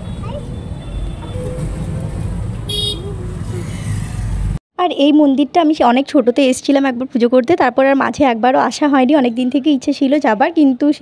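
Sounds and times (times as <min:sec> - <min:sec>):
surrounding traffic: 0:00.0 - 0:11.0
vehicle horn toot: 0:02.7 - 0:03.2.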